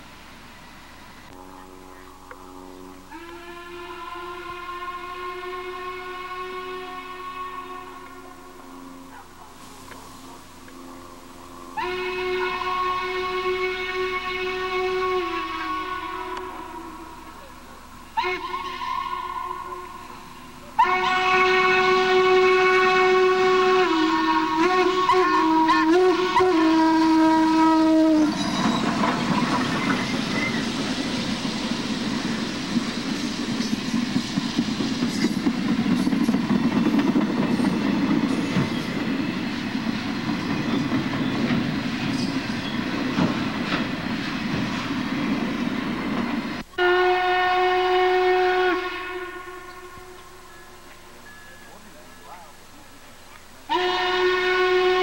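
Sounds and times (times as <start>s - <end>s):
train wheels rumbling on rails: 0.0s - 55.0s
steam whistle blasts: 0.6s - 52.2s, 53.7s - 55.0s.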